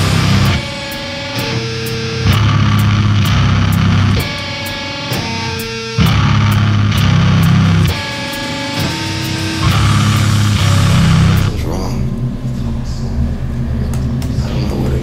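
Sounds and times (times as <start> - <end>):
crashing cymbals: 0.0 - 15.0
heavy distorted guitar and bass: 0.0 - 15.0.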